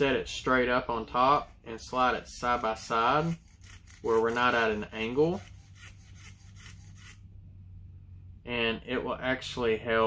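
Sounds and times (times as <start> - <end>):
blade scraping plastic: 1.7 - 7.2.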